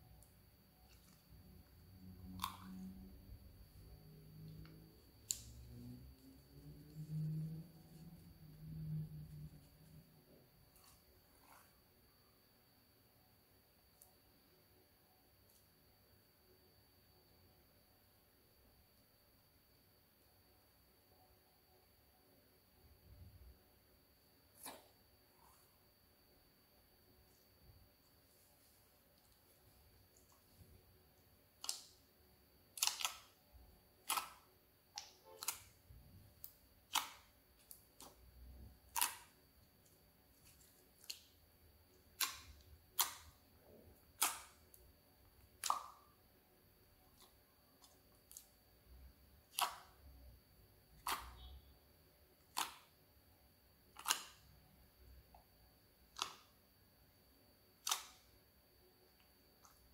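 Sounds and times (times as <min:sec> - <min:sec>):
slime squelching: 0:00.0 - 0:11.8, 0:24.5 - 0:25.8, 0:27.3 - 0:32.1, 0:32.7 - 0:46.2, 0:47.0 - 0:48.6, 0:49.3 - 0:50.2, 0:50.9 - 0:51.7, 0:52.4 - 0:53.1, 0:53.9 - 0:54.5, 0:56.0 - 0:56.6, 0:57.8 - 0:58.3
slime clicking and popping: 0:02.2 - 0:03.0, 0:31.6 - 0:32.0, 0:32.7 - 0:33.4, 0:34.0 - 0:35.8, 0:36.4 - 0:38.2, 0:38.9 - 0:39.4, 0:42.1 - 0:43.4, 0:44.2 - 0:44.6, 0:45.6 - 0:46.1, 0:49.5 - 0:50.0, 0:51.0 - 0:51.5, 0:52.4 - 0:52.9, 0:53.9 - 0:54.4, 0:56.1 - 0:56.5, 0:57.8 - 0:58.2.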